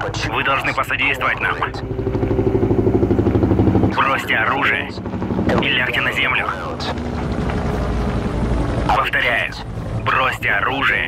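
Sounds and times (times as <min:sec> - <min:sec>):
helicopter rotor chopping: 0:00.0 - 0:11.0
low engine drone: 0:00.0 - 0:11.0.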